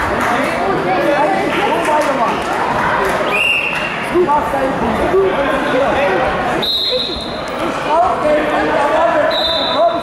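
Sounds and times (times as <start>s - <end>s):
high whistle blasts: 3.3s - 3.8s, 6.6s - 7.4s, 9.3s - 9.9s.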